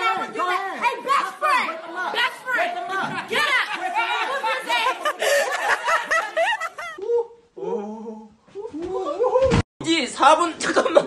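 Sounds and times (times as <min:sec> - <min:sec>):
young people talking excitedly: 0:00.0 - 0:06.4.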